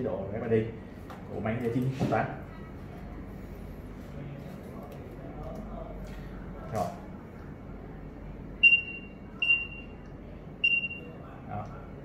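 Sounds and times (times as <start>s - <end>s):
scanner short high beeps: 8.6s - 10.0s, 10.6s - 11.2s.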